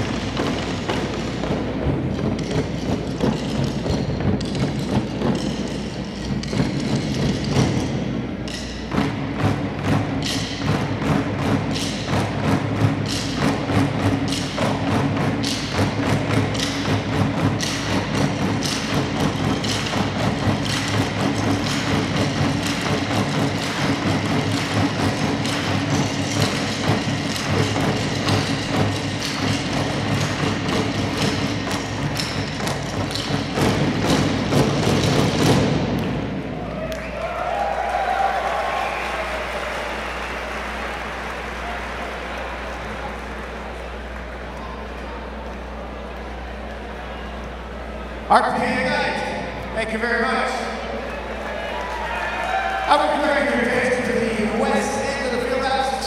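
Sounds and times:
drumsticks beating plastic trash cans: 0:08.5 - 0:36.2.

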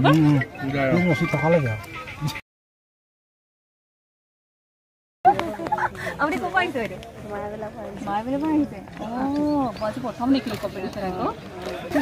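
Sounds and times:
people talking: 0:05.3 - 0:12.0.

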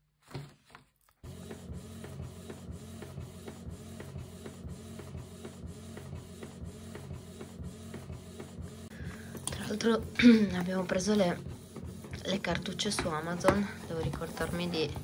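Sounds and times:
printer humming: 0:01.2 - 0:15.0.

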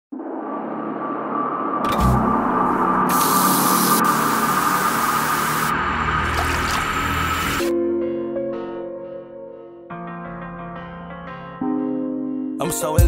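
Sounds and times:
hiss-like noise with held tone: 0:03.1 - 0:05.8.

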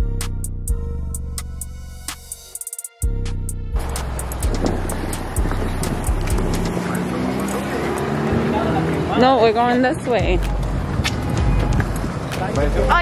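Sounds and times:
street noise: 0:00.0 - 0:13.0
vehicle engine running: 0:03.7 - 0:13.0.

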